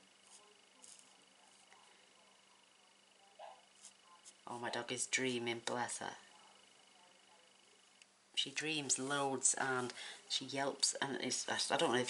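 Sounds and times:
low electrical hum: 0:00.0 - 0:12.0
marker nib strokes on cardstock: 0:00.2 - 0:01.7, 0:03.8 - 0:04.4.

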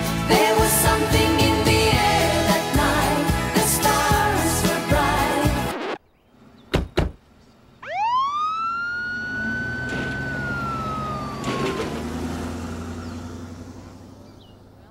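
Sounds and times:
fire siren winding: 0:07.8 - 0:12.2
sharp thumps: 0:09.7 - 0:12.3.

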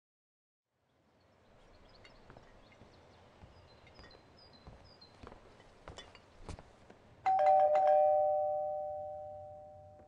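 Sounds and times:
two-tone doorbell chime: 0:07.2 - 0:10.0.

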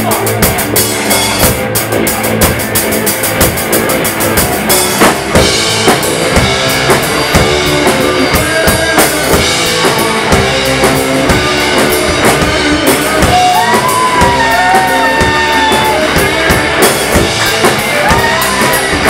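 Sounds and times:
drum kit beat: 0:00.0 - 0:19.0
live rock band playing: 0:00.0 - 0:19.0.

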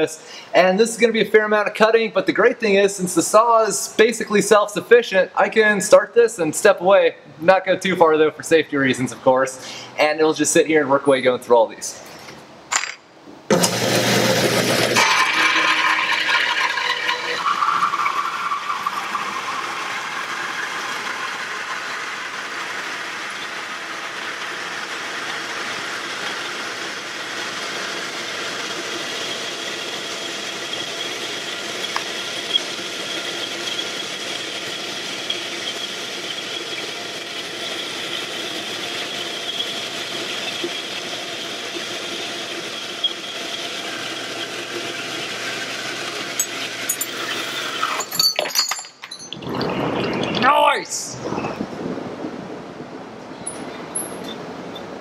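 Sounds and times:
bandsaw cutting steel: 0:13.5 - 0:48.2.

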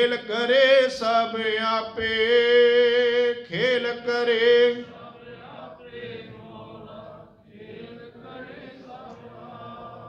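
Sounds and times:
congregation chanting in unison: 0:00.0 - 0:10.0.

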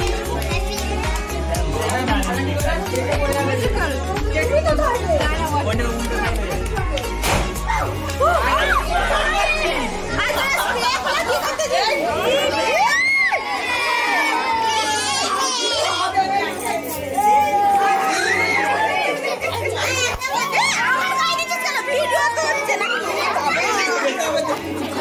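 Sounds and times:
children shouting and cheering: 0:00.0 - 0:03.7, 0:04.4 - 0:25.0
adult voices: 0:00.0 - 0:25.0.

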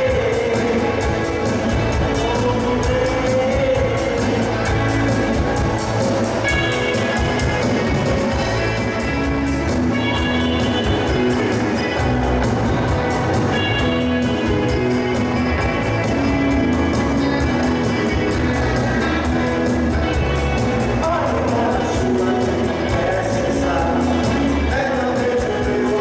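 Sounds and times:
bass guitar: 0:00.0 - 0:26.0
electric guitar: 0:00.0 - 0:26.0
keyboard: 0:00.0 - 0:26.0
rock band playing: 0:00.0 - 0:26.0
steady drum beat: 0:00.0 - 0:26.0
strummed acoustic guitars: 0:00.0 - 0:26.0.

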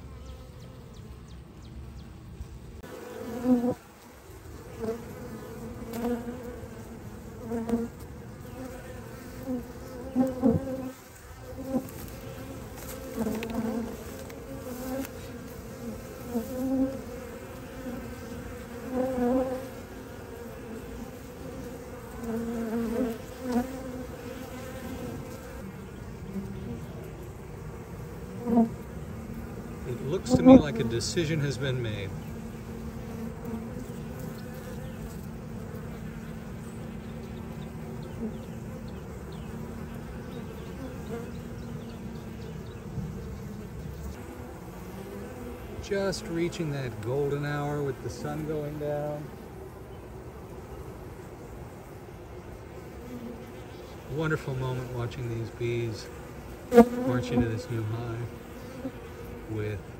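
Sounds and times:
honey bees buzzing: 0:00.0 - 0:59.9.

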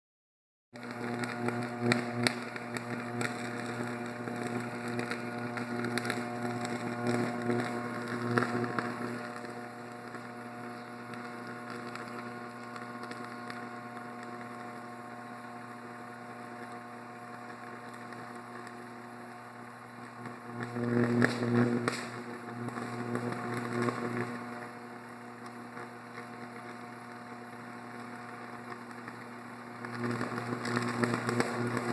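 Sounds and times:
electrical equipment humming: 0:00.8 - 0:31.9
sharp electrical cracks: 0:00.8 - 0:31.9.

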